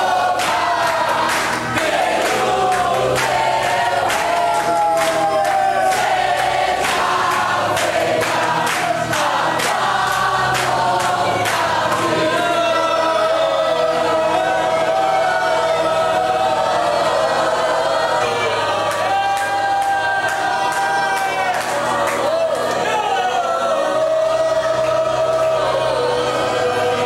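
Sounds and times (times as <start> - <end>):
people clapping in time: 0.0 - 12.7, 18.2 - 27.0
congregation singing: 0.0 - 27.0.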